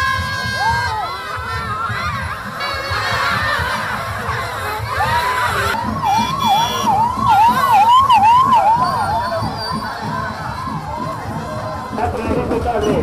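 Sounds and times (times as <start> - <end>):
street crowd noise: 0.0 - 13.0
siren yelping: 4.8 - 11.8.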